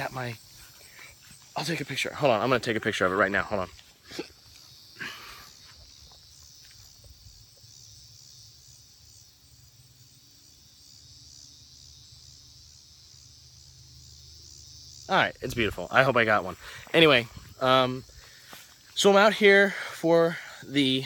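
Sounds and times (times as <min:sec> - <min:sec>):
crickets chirping: 0:00.0 - 0:21.0.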